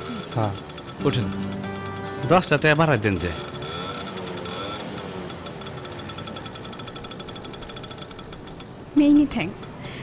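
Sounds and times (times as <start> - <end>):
auto-rickshaw engine idling: 0.0 - 9.5.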